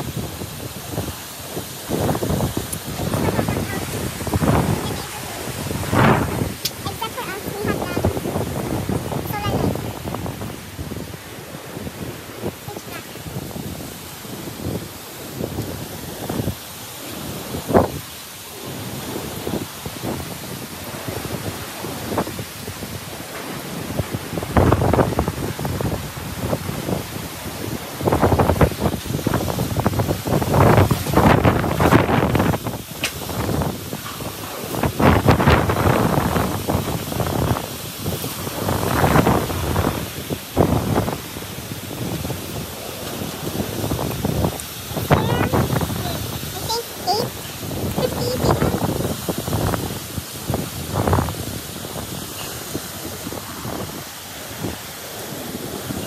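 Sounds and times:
strong wind gusting on microphone: 0:00.0 - 0:56.0.

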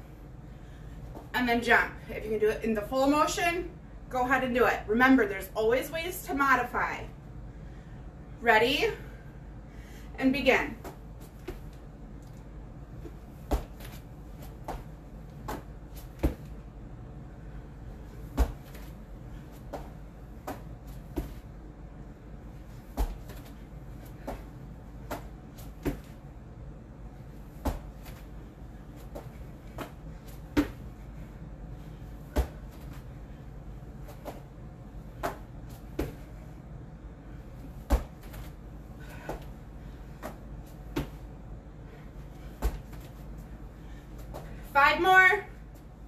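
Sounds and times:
low steady hum: 0:00.0 - 0:46.0
thuds on exercise mat: 0:13.4 - 0:14.0, 0:14.6 - 0:16.5, 0:18.3 - 0:18.9, 0:22.9 - 0:23.4, 0:25.1 - 0:26.2, 0:27.6 - 0:28.2, 0:29.2 - 0:30.8, 0:32.3 - 0:33.0, 0:37.8 - 0:38.5, 0:42.6 - 0:43.0.

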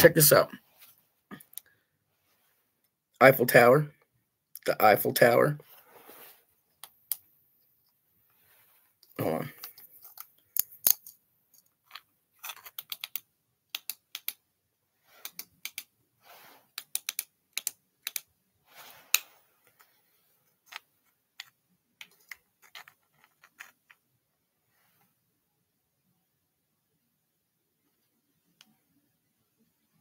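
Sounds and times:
metal flashlight and rock clicking: 0:09.6 - 0:14.4.

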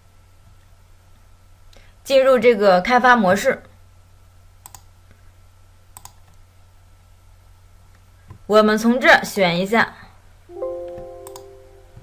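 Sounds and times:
computer mouse clicks: 0:04.6 - 0:04.9, 0:05.9 - 0:06.4, 0:11.2 - 0:11.5.

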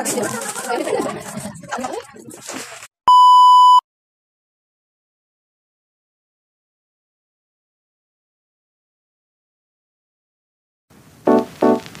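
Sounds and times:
electronic beep: 0:03.1 - 0:03.8.

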